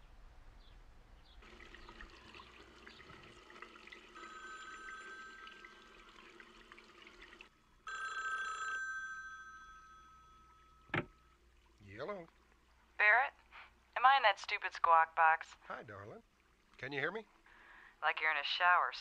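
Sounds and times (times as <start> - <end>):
telephone bell ringing: 4.1 - 6.9, 7.8 - 11.0.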